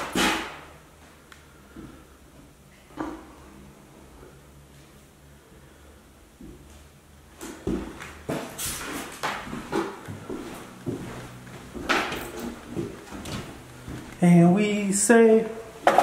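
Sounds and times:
footsteps on wooden floorboards: 7.5 - 14.3.

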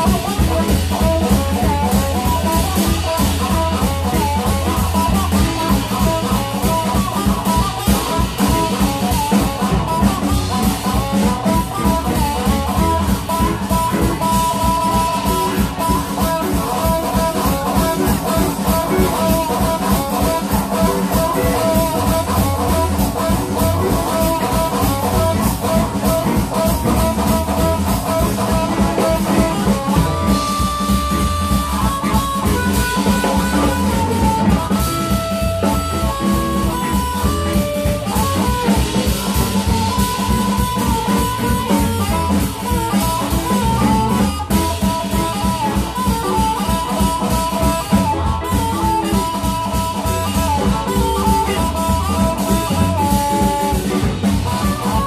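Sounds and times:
drum kit steady beat: 0.0 - 55.0
electric guitars: 0.0 - 55.0
harmonica: 0.0 - 55.0.

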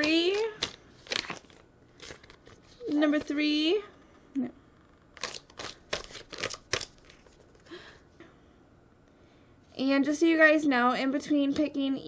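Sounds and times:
plastic pouch crinkling: 0.0 - 3.3, 5.2 - 7.7.

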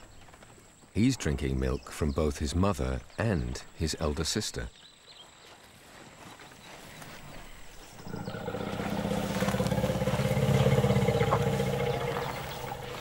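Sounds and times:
elephant rumbling: 7.9 - 13.0.

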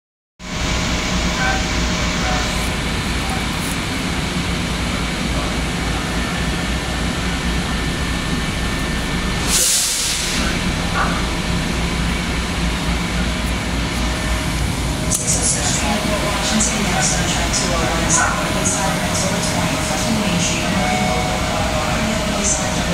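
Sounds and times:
electric train droning: 0.4 - 22.9
burst of hiss: 9.4 - 10.6.

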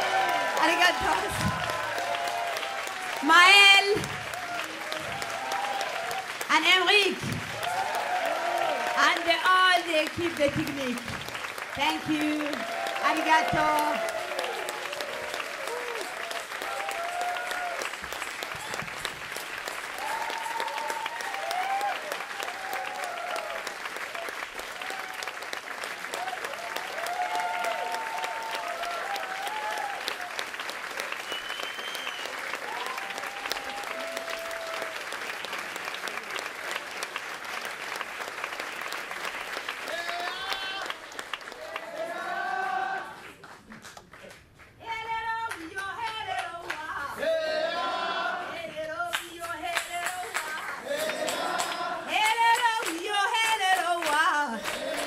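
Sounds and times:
audience applauding: 0.0 - 47.4, 49.1 - 55.0.

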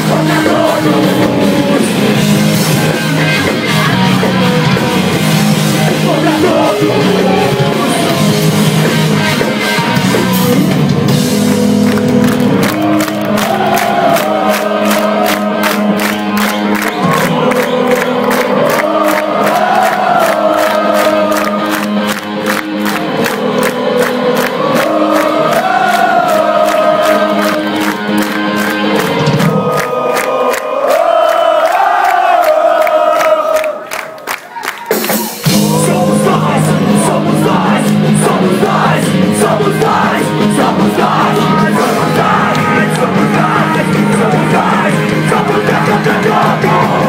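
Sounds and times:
crowd singing along: 0.0 - 11.2, 12.4 - 34.2, 35.4 - 47.0
punk band playing live: 0.0 - 30.6, 33.2 - 47.0
fast drum beat: 34.8 - 47.0.

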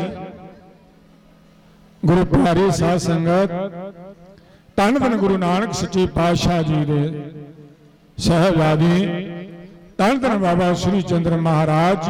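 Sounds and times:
amplified speech: 0.0 - 0.7, 2.0 - 4.1, 4.8 - 7.4, 8.2 - 12.0.

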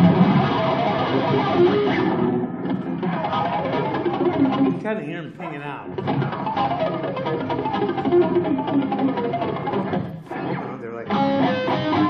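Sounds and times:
electric guitar harmonics: 0.0 - 12.0.

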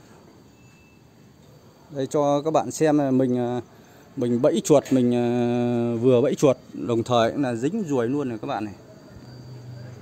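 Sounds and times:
brief thin tone: 0.0 - 1.2, 9.0 - 10.0
crickets chirring: 0.0 - 10.0.

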